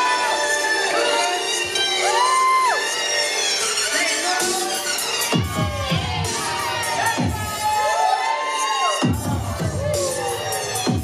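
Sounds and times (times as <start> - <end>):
breakdance music: 0.0 - 11.0
crowd: 0.0 - 11.0.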